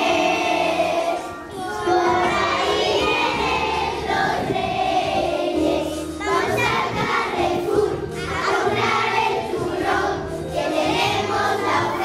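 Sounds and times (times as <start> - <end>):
children singing in chorus: 0.0 - 12.0
musical accompaniment: 0.0 - 12.0.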